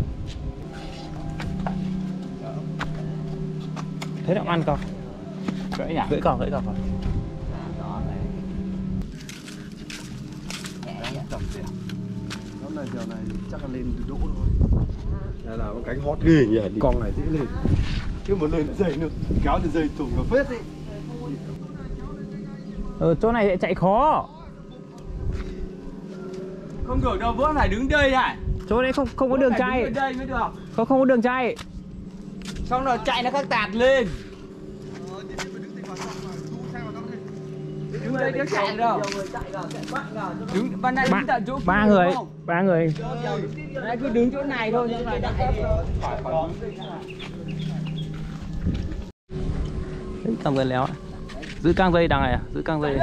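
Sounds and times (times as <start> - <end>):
steady low hum: 0.0 - 53.0
wind rumbling on microphone: 4.8 - 12.0, 13.3 - 23.6, 26.8 - 30.8, 44.9 - 53.0.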